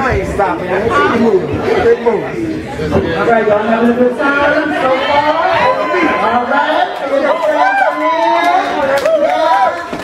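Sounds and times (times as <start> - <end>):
chatter of people: 0.0 - 10.0.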